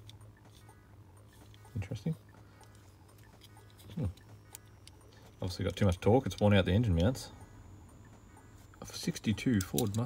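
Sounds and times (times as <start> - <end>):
toy car small clicks: 9.5 - 10.0.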